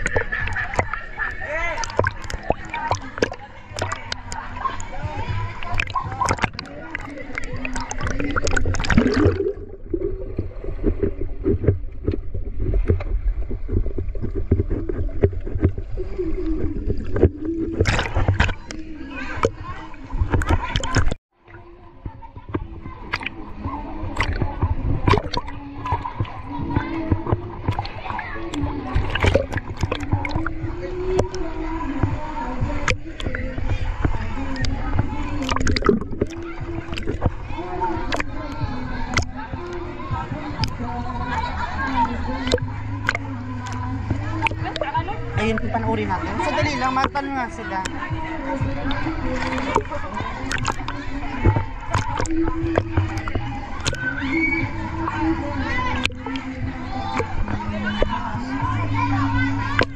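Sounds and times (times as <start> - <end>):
bubbling clicks underwater: 0.0 - 4.9, 5.6 - 19.6, 20.2 - 21.2, 23.0 - 23.4, 24.1 - 32.2, 32.8 - 37.4, 38.0 - 39.8, 42.4 - 54.2, 55.9 - 58.2, 59.7 - 59.9
muffled underwater water rumble: 0.0 - 59.9
muffled voices: 0.0 - 59.9
water splashing: 0.0 - 59.9.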